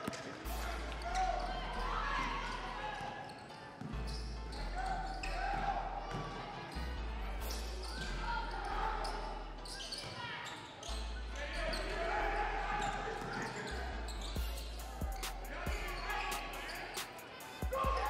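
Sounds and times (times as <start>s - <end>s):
voices calling out: 7.9s - 18.0s.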